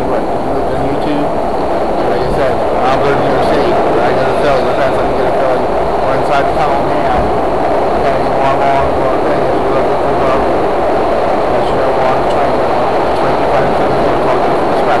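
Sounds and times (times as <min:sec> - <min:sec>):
subway train roaring in motion: 0:00.0 - 0:15.0.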